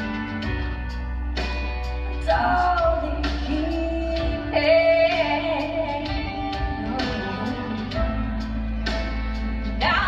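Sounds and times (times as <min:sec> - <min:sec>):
song with guitar and singing: 0:00.0 - 0:10.0.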